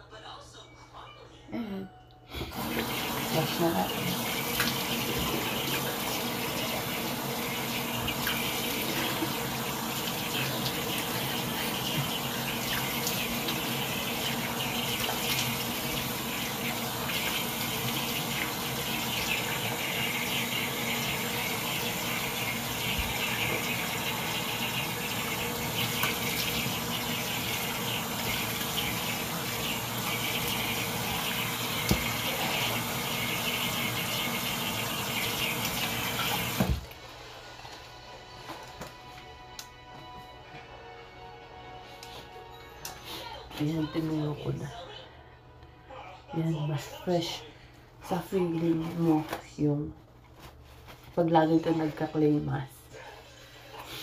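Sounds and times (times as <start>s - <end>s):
tap water running into sink: 2.4s - 37.0s.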